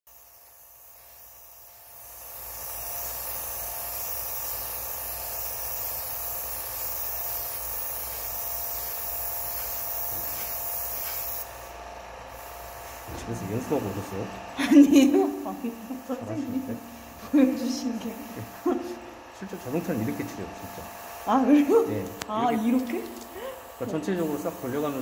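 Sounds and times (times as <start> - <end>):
airbrush hissing: 0.1 - 25.0.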